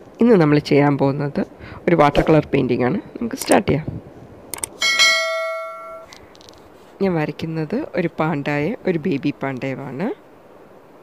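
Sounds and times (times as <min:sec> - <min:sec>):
mouse clicks: 0:04.5 - 0:04.8
bell ding: 0:04.8 - 0:06.1.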